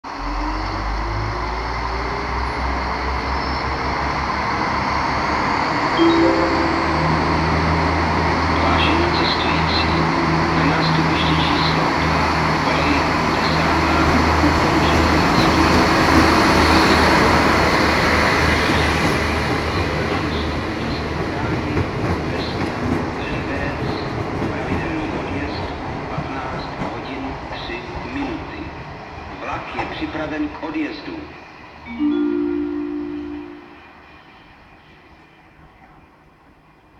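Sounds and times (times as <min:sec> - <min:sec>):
train engine drone: 0:00.1 - 0:29.8, 0:30.4 - 0:36.9.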